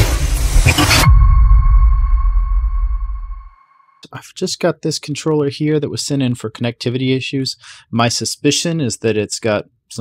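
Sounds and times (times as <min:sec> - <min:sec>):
ringing electronic tone: 0:00.4 - 0:04.0.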